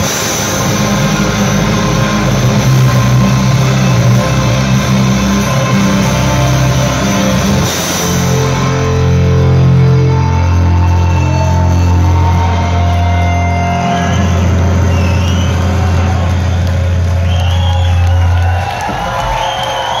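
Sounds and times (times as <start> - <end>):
rock band droning chord: 0.0 - 15.0
crowd whooping and cheering: 0.0 - 20.0.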